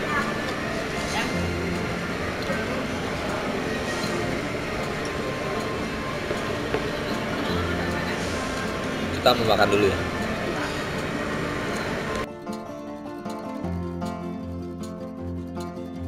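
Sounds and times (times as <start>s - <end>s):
murmur of voices: 0.0s - 12.3s
background music with bass notes: 0.0s - 16.0s.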